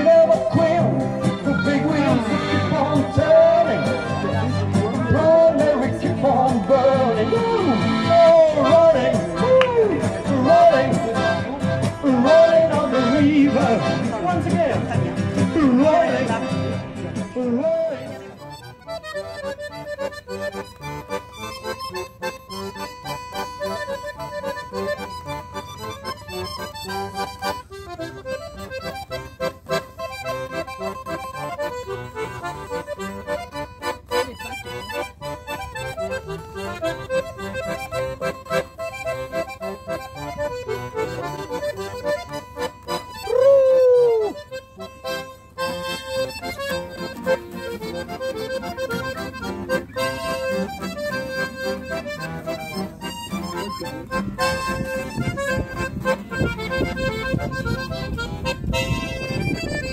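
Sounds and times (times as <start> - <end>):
strummed acoustic guitar: 0.0 - 43.3, 44.6 - 59.9
accordion playing lively melody: 0.0 - 59.9.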